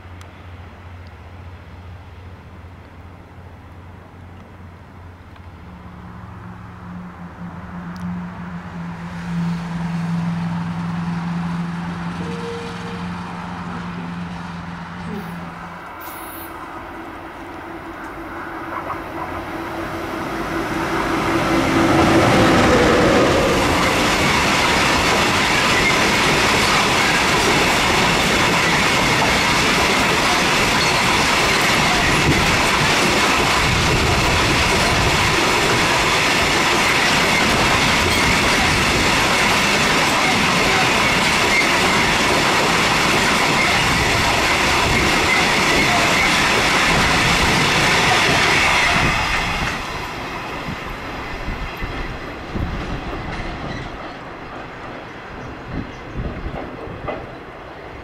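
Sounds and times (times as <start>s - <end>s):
freight train wheels on rail: 0.0s - 58.0s.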